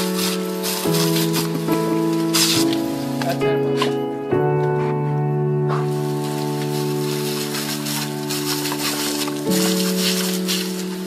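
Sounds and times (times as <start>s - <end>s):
hose nozzle spraying water: 0.0s - 3.9s, 5.8s - 11.0s
background music of held chords: 0.0s - 11.0s.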